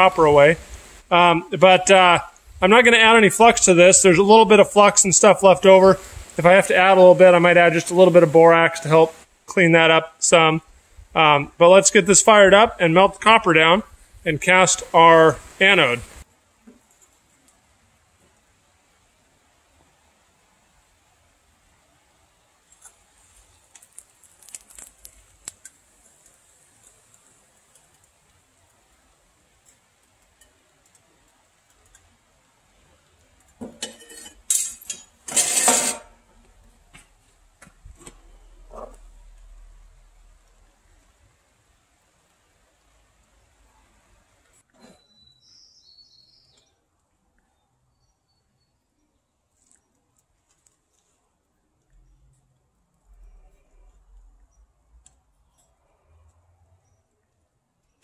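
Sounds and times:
metal-on-metal scrapes: 0:33.7 - 0:36.3
metal tongs clinking and scraping: 0:33.8 - 0:36.1.

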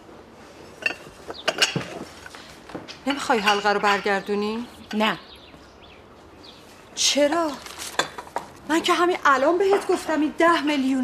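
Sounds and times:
pottery knocking and clinking: 0:00.8 - 0:02.1, 0:03.3 - 0:04.2
paper rustling: 0:07.4 - 0:08.1.

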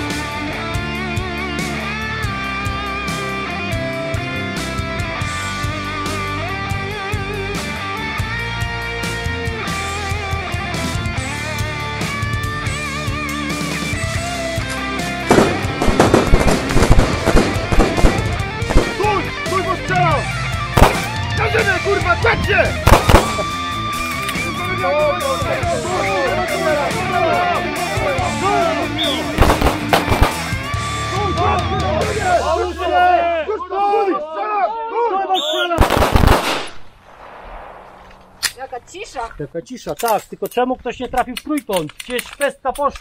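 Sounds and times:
electric guitar rock music: 0:00.0 - 0:32.8
handgun shots: 0:15.3 - 0:19.0, 0:20.8 - 0:21.2, 0:22.9 - 0:23.5, 0:29.4 - 0:30.6, 0:35.8 - 0:36.9.

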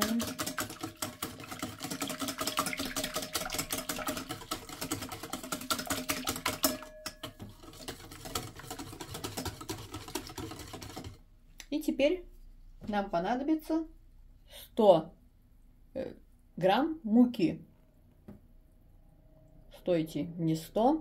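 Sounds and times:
whisk clattering against bowl: 0:00.0 - 0:11.2.

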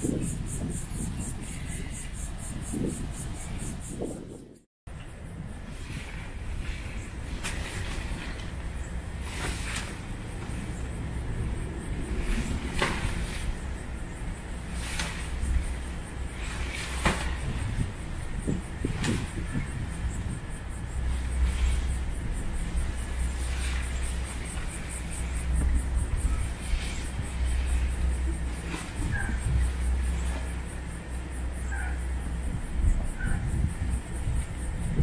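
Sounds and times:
high pulsing buzz: 0:00.0 - 0:35.0
wind buffeting microphone: 0:00.0 - 0:35.0.

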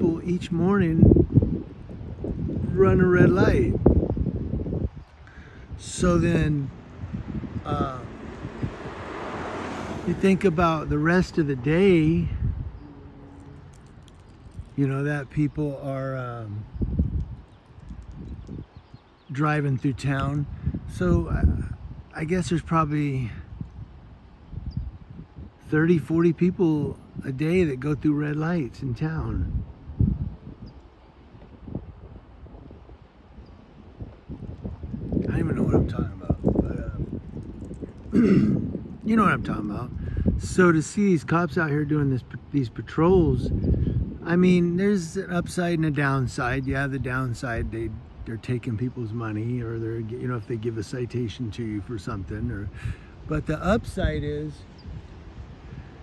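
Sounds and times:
faint outdoor ambience: 0:00.0 - 0:56.0
wind buffeting microphone: 0:00.0 - 0:56.0
outdoor rushing noise: 0:05.7 - 0:14.9.

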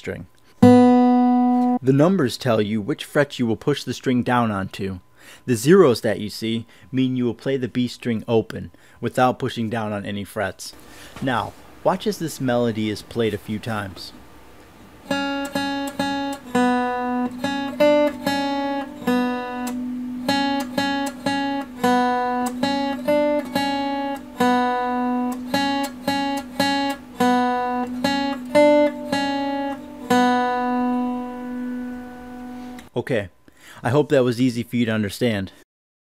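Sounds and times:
acoustic guitar melody: 0:00.5 - 0:01.8, 0:15.0 - 0:32.9.

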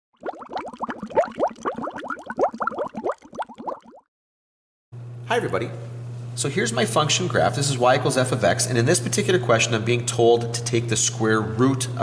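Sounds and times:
water bubbling: 0:00.2 - 0:04.1.

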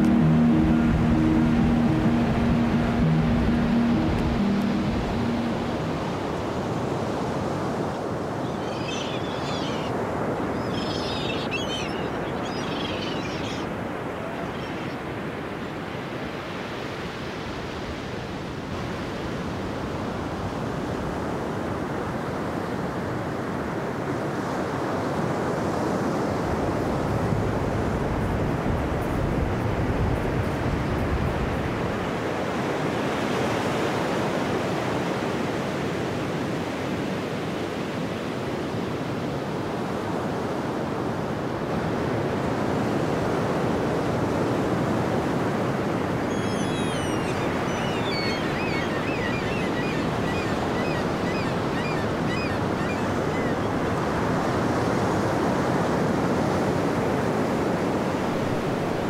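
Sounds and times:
sea surf: 0:00.0 - 0:59.0.

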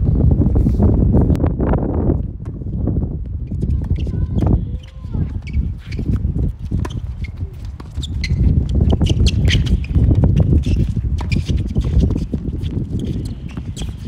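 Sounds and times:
shoe squeaks: 0:03.4 - 0:14.0.

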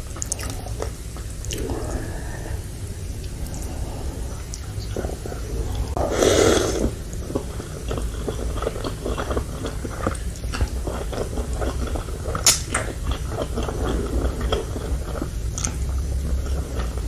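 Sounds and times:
noodles slurped and chewed: 0:03.2 - 0:17.0.

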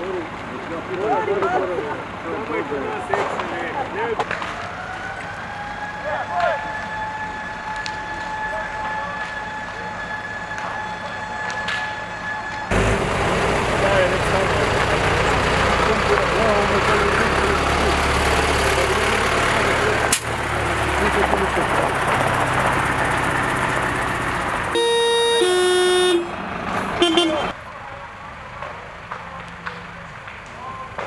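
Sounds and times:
fire crackling: 0:00.0 - 0:31.0
fire engine engine rumbling: 0:00.0 - 0:31.0.

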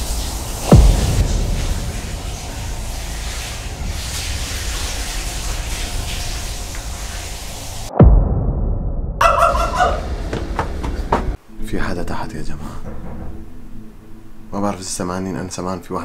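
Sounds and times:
steady rushing noise with rumble: 0:00.0 - 0:08.5
deep boom falling in pitch: 0:00.7 - 0:05.5, 0:07.9 - 0:10.5.

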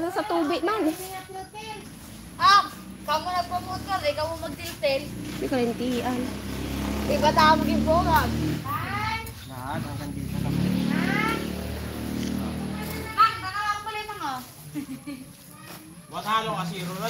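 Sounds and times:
voices calling out: 0:00.0 - 0:17.0.

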